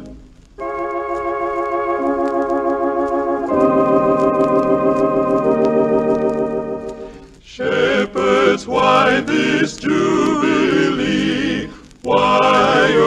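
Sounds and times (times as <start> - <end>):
organ sustained chords: 0.0 - 13.0
record surface clicks: 0.0 - 13.0.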